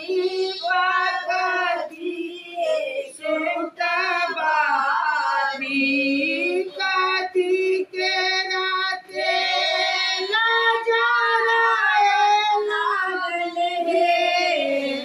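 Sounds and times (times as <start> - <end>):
women singing: 0.0 - 15.0.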